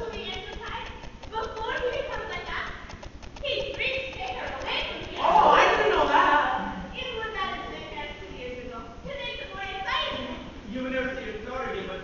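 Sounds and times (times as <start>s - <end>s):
light clicks: 0.0s - 5.2s
voices speaking and exclaiming: 3.4s - 10.5s.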